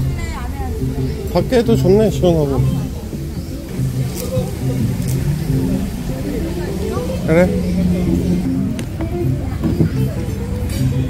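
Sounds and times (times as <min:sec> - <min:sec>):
steady low rumble: 0:00.0 - 0:09.5
indistinct voices talking: 0:00.0 - 0:11.0.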